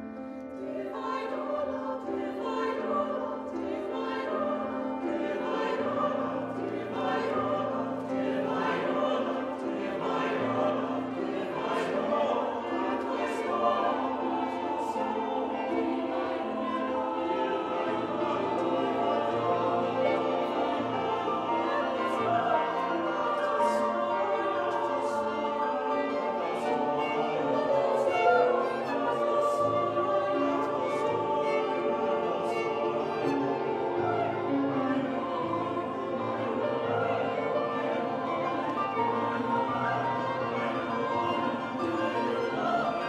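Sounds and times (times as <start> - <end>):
mixed choir singing: 0.0 - 43.0
piano: 0.0 - 43.0
violin: 0.0 - 43.0.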